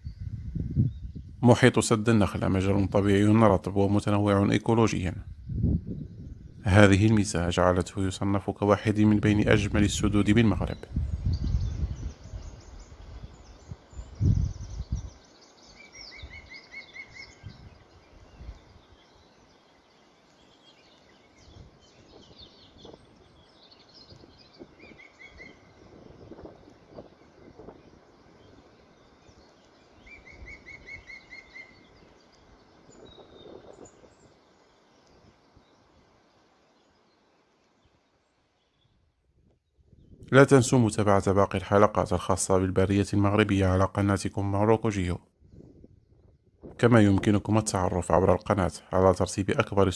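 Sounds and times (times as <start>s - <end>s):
faint outdoor background: 0.0s - 49.9s
songbird trill: 0.0s - 49.9s
high bird chirps: 10.7s - 35.9s.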